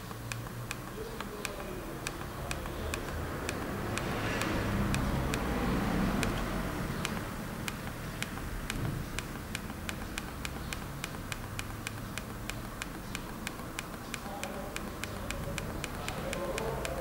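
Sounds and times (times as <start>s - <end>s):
e-book reader clicks: 0.0s - 17.0s.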